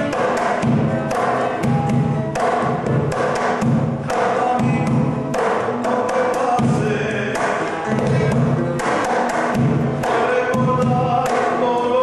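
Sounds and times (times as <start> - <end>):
acoustic guitar picking: 0.0 - 12.0
cajon bass strokes and slaps: 0.0 - 12.0.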